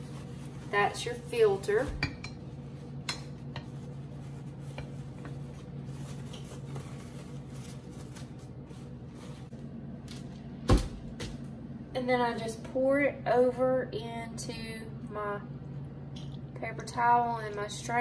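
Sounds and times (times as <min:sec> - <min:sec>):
paper towel crinkling: 0:00.0 - 0:01.8, 0:02.5 - 0:09.6
steady low hum: 0:00.0 - 0:18.0.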